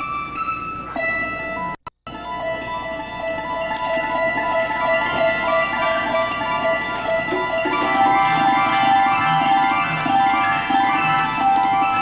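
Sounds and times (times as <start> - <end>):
harp guitar plucked runs: 0.0 - 12.0.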